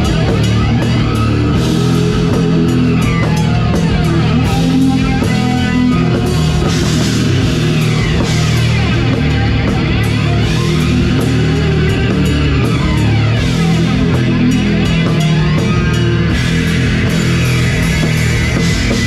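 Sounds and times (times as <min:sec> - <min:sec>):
death metal band playing live: 0:00.0 - 0:19.0.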